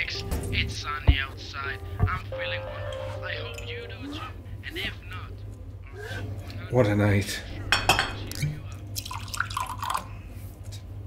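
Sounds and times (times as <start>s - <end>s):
low steady hum: 0.0s - 11.0s
glass clinking: 2.4s - 4.0s, 7.7s - 8.6s.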